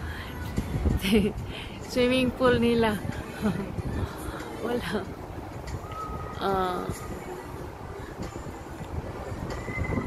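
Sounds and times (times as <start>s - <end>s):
city rumble: 0.0s - 10.0s
thin high squeal: 9.5s - 10.0s.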